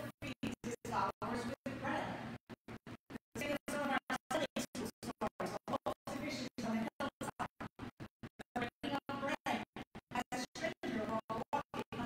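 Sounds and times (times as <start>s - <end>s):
woman speaking: 0.0s - 2.4s, 3.3s - 7.6s, 8.4s - 12.0s.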